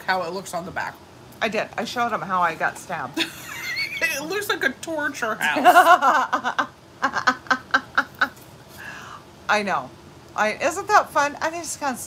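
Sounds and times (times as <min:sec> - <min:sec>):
woman laughing: 0:03.2 - 0:04.4, 0:05.4 - 0:08.4.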